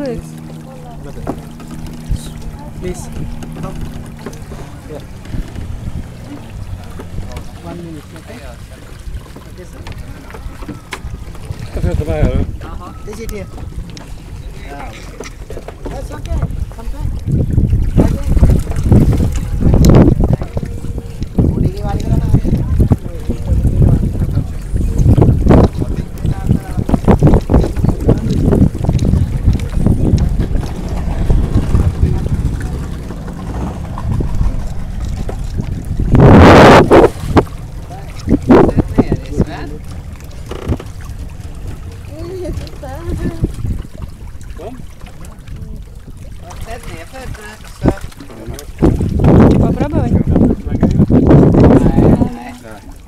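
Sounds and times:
fish thrashing and splashing: 0:00.0 - 0:53.0
people talking: 0:06.3 - 0:08.9, 0:18.0 - 0:30.3, 0:31.9 - 0:33.2, 0:37.9 - 0:39.9, 0:42.0 - 0:43.5, 0:51.6 - 0:52.9
steady low rumble: 0:16.2 - 0:44.5.

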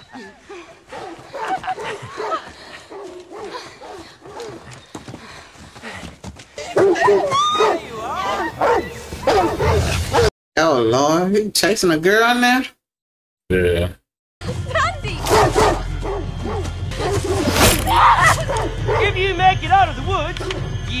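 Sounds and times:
dogs barking and yelping: 0:00.1 - 0:05.0, 0:06.6 - 0:10.3, 0:15.2 - 0:19.1
voices: 0:06.6 - 0:09.8.

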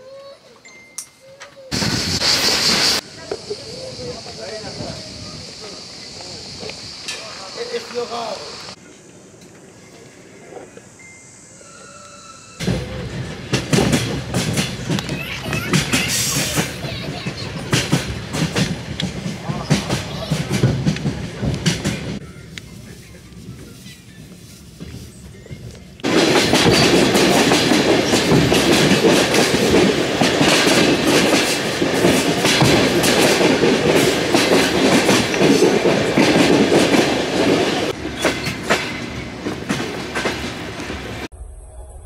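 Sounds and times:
air brakes hissing: 0:01.7 - 0:08.8
passenger train rumble: 0:01.7 - 0:42.0.

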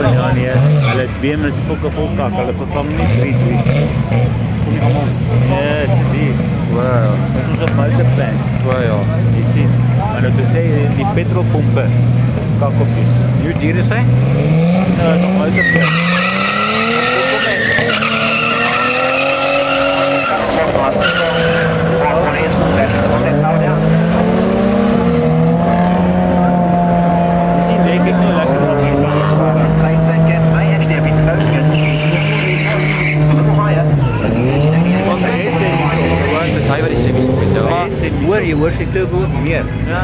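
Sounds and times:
drag racing car engines revving: 0:00.0 - 0:40.0.

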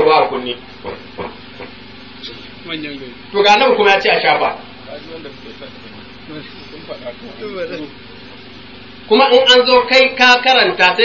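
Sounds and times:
faint hum: 0:00.0 - 0:11.0
steady hiss: 0:00.3 - 0:11.0.

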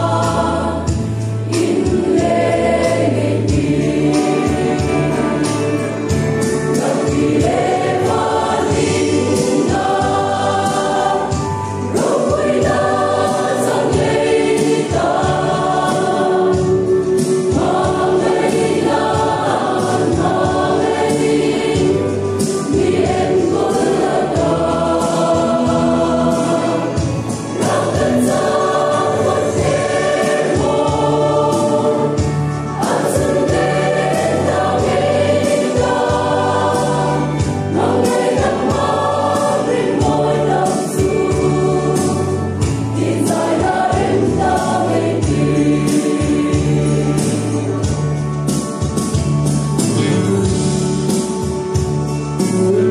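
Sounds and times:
mixed choir singing: 0:00.0 - 0:52.9.

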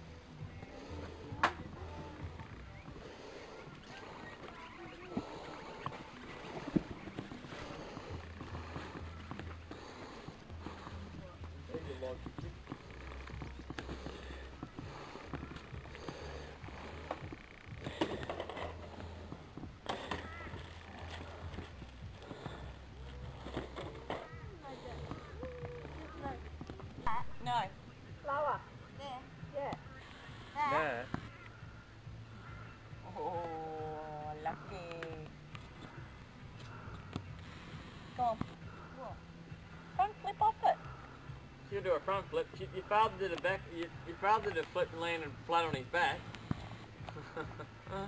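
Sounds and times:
people talking outdoors: 0:00.0 - 0:48.0.

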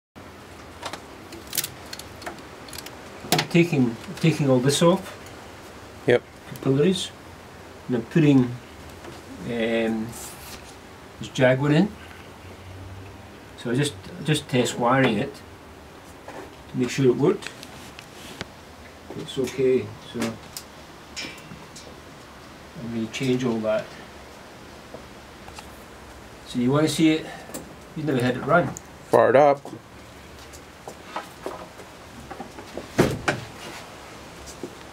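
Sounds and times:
faint steady hum: 0:00.2 - 0:34.9
sharp rustle of wiring: 0:00.5 - 0:05.8, 0:08.4 - 0:10.8
light clicks of small parts: 0:00.8 - 0:03.0.

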